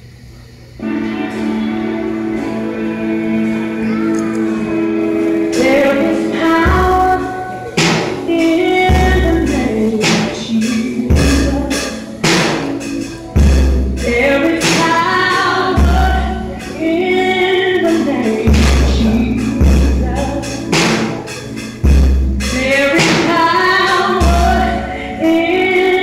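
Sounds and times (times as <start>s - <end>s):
bass notes: 0.8s - 26.0s
gospel song with singing: 0.8s - 26.0s.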